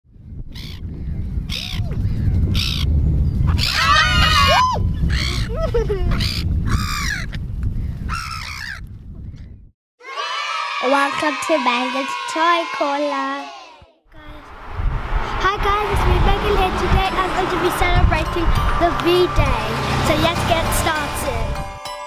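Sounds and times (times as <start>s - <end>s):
wind rumble on microphone: 0.1s - 9.7s, 14.2s - 21.6s
gulls calling: 3.5s - 7.3s.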